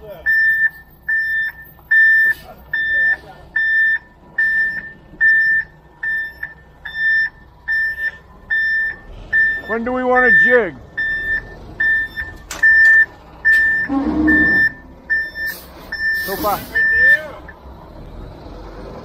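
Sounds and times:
truck backup alarm beeping: 0.0 - 17.7
diesel truck engine running: 0.0 - 19.0
person's voice: 16.2 - 17.5.

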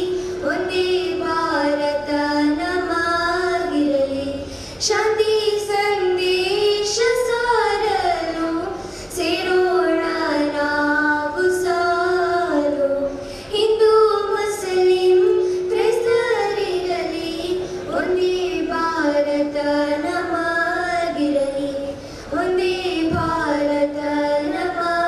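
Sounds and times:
girls singing through microphones: 0.0 - 25.0.

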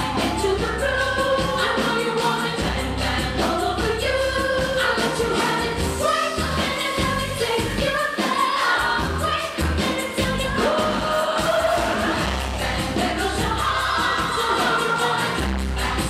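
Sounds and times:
band with bass and drums: 0.0 - 7.9, 8.8 - 16.0
woman singing: 0.0 - 12.2, 12.9 - 16.0.

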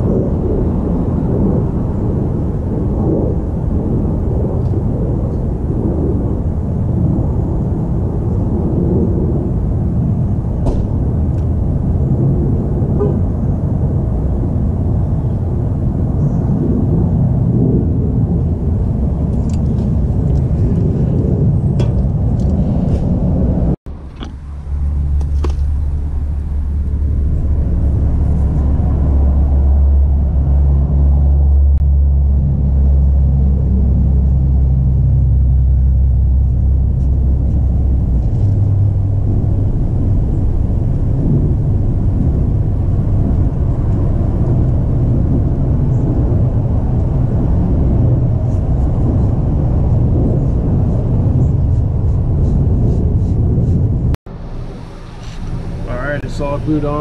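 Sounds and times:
low rumble with deep hum: 0.0 - 57.0.

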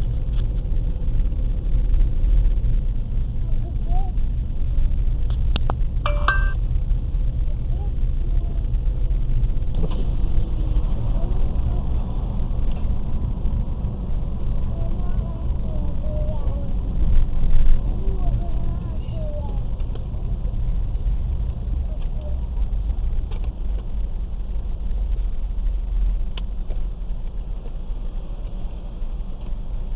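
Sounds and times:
short beep-like tone: 6.1 - 6.6.

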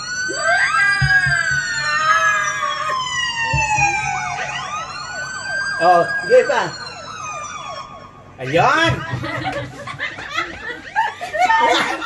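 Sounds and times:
siren-like wail: 0.0 - 12.0.

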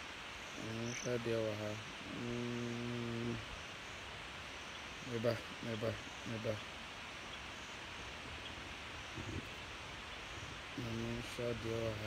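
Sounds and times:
man humming low note: 2.1 - 3.4.

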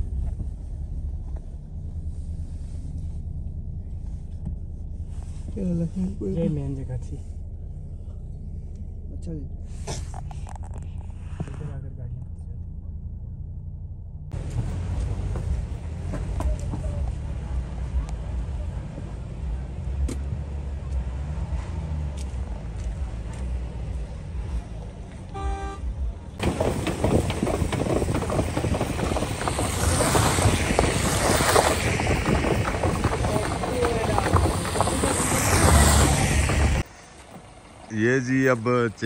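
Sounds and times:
car engine and road rumble: 0.0 - 39.0
car horn toot: 25.3 - 26.0
snow chains rattling on snow: 26.4 - 36.8.

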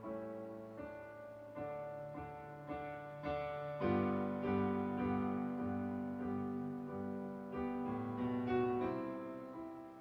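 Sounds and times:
digital piano playing hymn chords: 0.0 - 10.0.

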